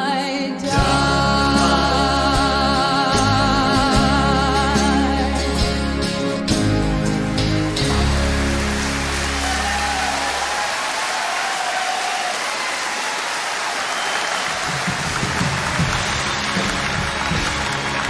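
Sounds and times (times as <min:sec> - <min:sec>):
audience applause: 0:07.9 - 0:18.0.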